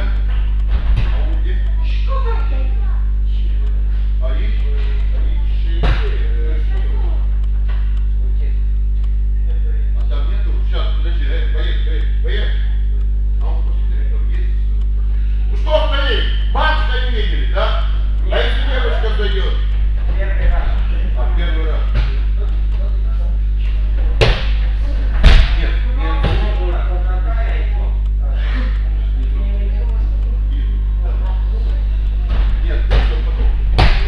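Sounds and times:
loud low hum: 0:00.0 - 0:34.0
people talking: 0:00.0 - 0:34.0
sharp knock: 0:24.2 - 0:26.6, 0:32.3 - 0:34.0.

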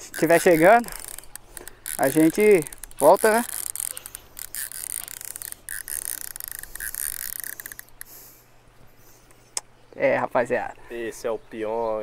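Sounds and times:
fishing reel clicking: 0:00.0 - 0:08.2.

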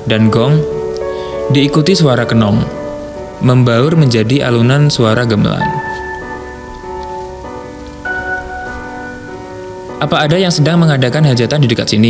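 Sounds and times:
music of ringing tones: 0:00.6 - 0:11.4
rain: 0:00.6 - 0:12.0.

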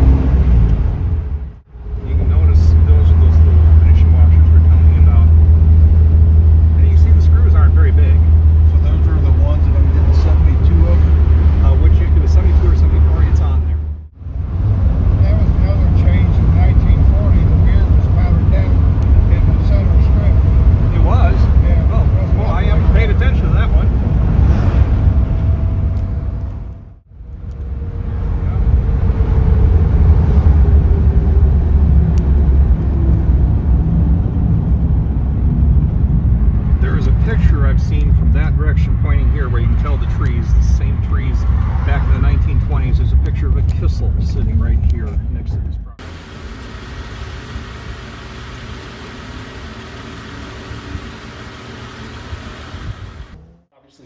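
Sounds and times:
car engine running: 0:00.0 - 0:27.0, 0:42.5 - 0:53.7
road noise: 0:00.0 - 0:54.0.

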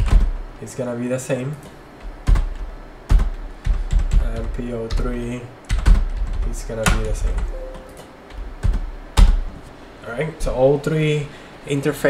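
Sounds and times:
keyboard keystrokes: 0:01.5 - 0:09.4.

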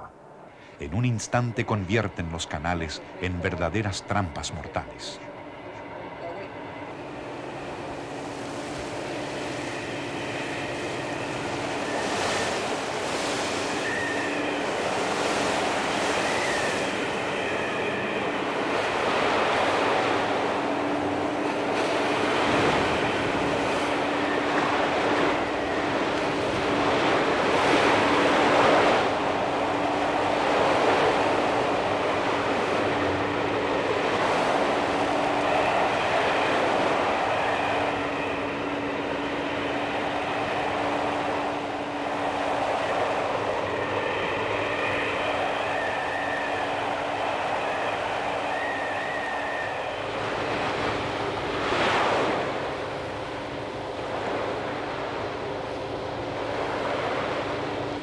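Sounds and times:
boat engine humming: 0:00.0 - 0:58.0.

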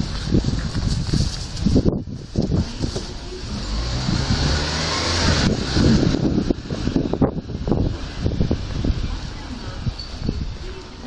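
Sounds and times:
small truck passing by: 0:03.2 - 0:09.4.

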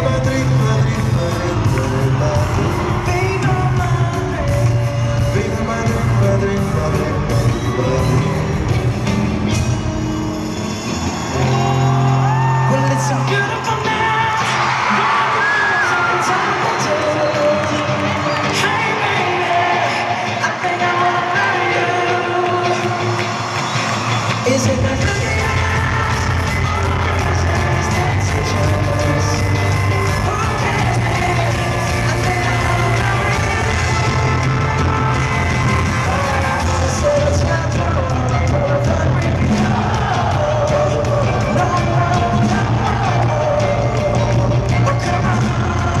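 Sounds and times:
person singing: 0:00.0 - 0:09.2, 0:11.4 - 0:23.6, 0:24.3 - 0:46.0
drums: 0:00.0 - 0:46.0
electric guitars: 0:00.0 - 0:46.0
live pop-rock band: 0:00.0 - 0:46.0.

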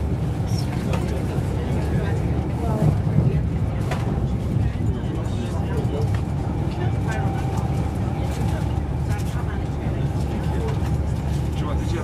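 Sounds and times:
quiet passenger voices: 0:00.0 - 0:12.0
train interior rumble: 0:00.0 - 0:12.0.

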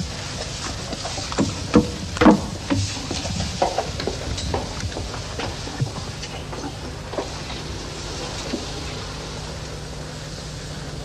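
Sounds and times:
tv soundtrack hiss: 0:00.0 - 0:11.0.

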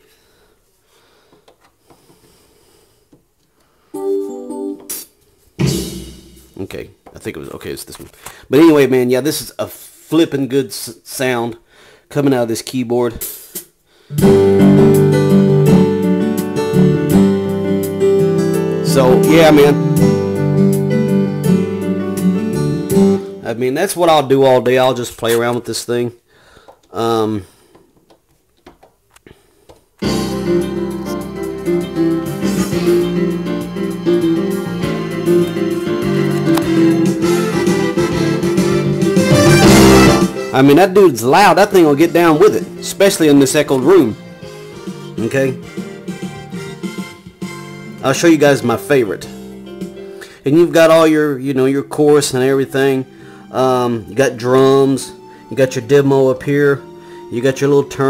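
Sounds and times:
keyboard playing short phrase: 0:04.0 - 0:05.2, 0:14.1 - 0:23.6, 0:30.0 - 0:49.4.

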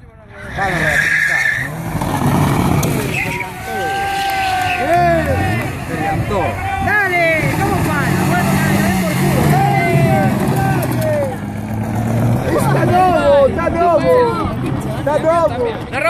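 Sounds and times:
rear tyres spinning: 0:00.3 - 0:16.0
car engine at high revs: 0:01.5 - 0:15.4.

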